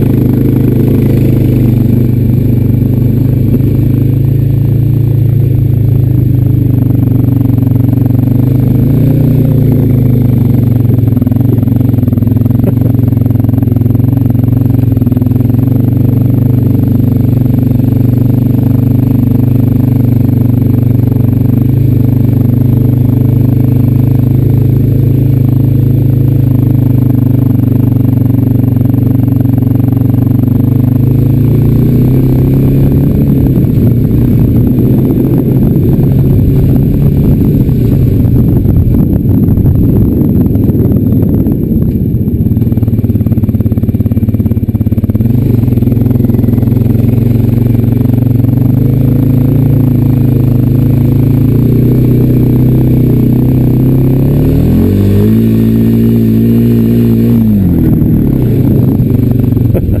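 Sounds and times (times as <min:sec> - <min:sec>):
quad bike engine revving: 0:00.0 - 1:00.0.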